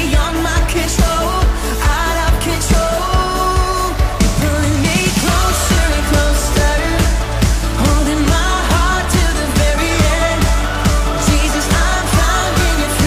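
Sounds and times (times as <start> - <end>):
person singing: 0.0 - 13.0
pop band with drum beat: 0.0 - 13.0.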